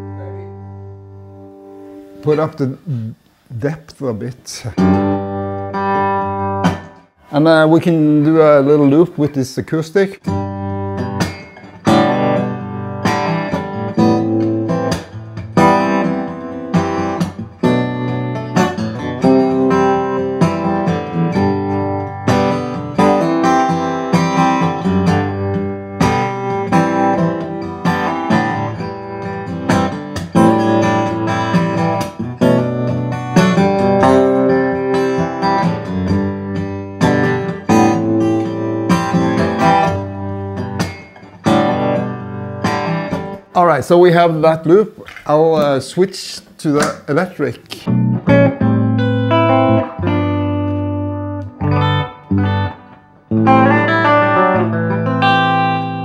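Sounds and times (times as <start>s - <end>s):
acoustic guitar strumming chords: 0.0s - 3.2s, 4.8s - 7.4s, 10.2s - 43.7s, 47.8s - 56.0s.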